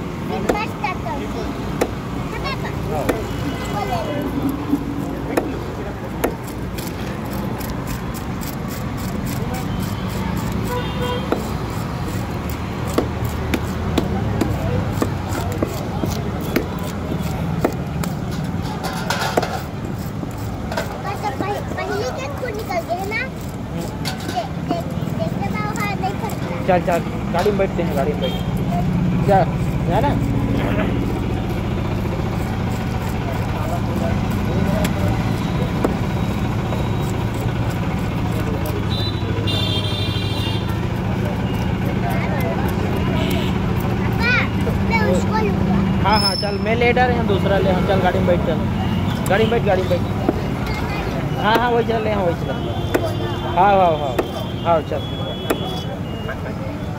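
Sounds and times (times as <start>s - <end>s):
traffic rumble: 0.0s - 56.9s
knife scraping fish: 6.2s - 26.4s, 27.9s - 39.0s
vehicle horn tooting: 10.6s - 11.4s, 38.8s - 40.8s, 43.1s - 43.6s, 52.2s - 56.4s
faint voices: 13.8s - 39.8s, 40.4s - 46.4s.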